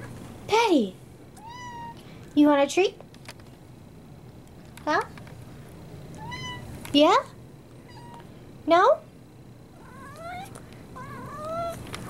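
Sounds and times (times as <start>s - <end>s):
cat meowing: 6.2s - 6.7s, 9.8s - 11.8s.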